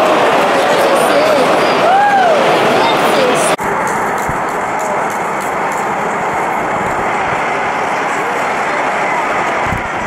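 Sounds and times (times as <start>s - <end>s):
stadium crowd din: 0.0s - 10.0s.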